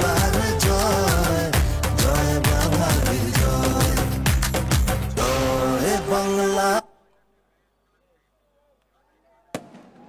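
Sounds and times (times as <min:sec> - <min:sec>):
firework bang: 0:09.6 - 0:10.0.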